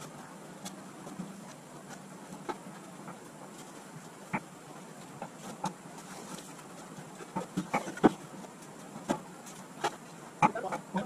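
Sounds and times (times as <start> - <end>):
faint background noise: 0.0 - 11.0.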